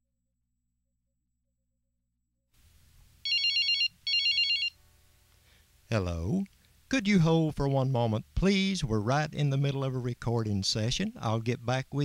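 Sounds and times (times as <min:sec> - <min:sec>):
electronic telephone ringtone: 0:03.2 - 0:04.8.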